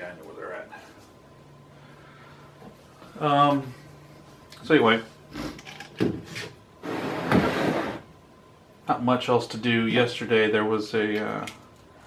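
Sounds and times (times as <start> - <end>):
board scraping on bench: 6.2 - 8.1.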